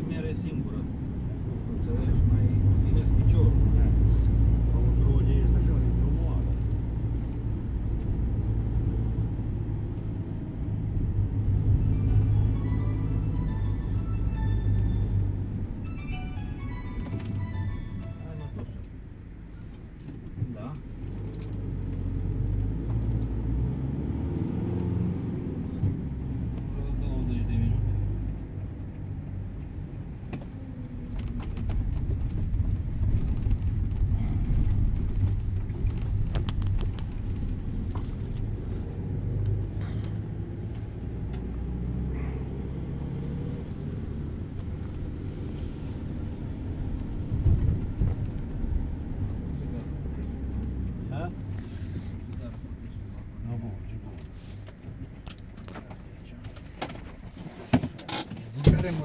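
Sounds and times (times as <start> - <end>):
tram rumbling on rails: 25.3 - 40.6, 45.0 - 54.1.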